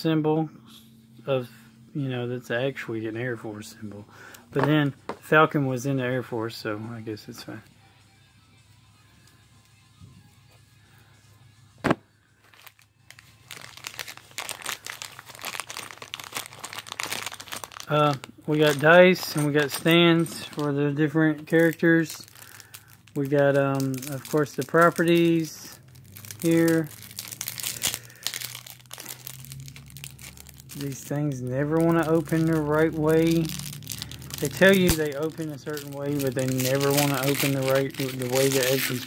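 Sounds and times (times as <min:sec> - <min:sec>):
plastic bag crinkling: 0:12.4 - 0:39.0.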